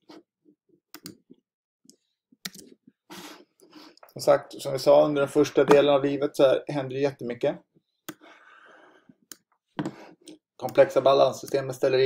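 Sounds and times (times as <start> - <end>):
person speaking: 4.1 - 7.6, 9.8 - 12.0
faint breath: 8.2 - 9.2.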